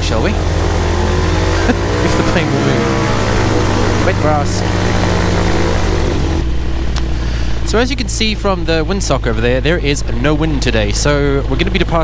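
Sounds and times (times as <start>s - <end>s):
microlight engine drone: 0.0s - 12.0s.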